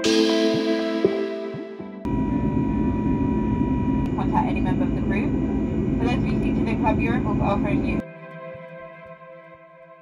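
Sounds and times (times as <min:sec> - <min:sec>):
airliner cabin rumble: 0:02.1 - 0:08.0.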